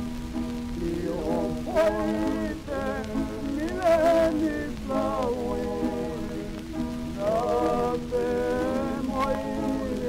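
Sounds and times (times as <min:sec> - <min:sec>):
record surface hiss and crackle: 0:00.0 - 0:10.0
string ensemble playing folk song: 0:00.0 - 0:10.0
person singing: 0:00.7 - 0:10.0.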